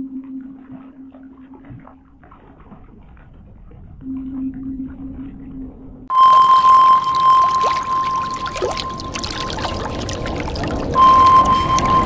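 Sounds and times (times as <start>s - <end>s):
low steady hum: 0.0s - 12.0s
high tone over noisy wash: 6.1s - 12.0s.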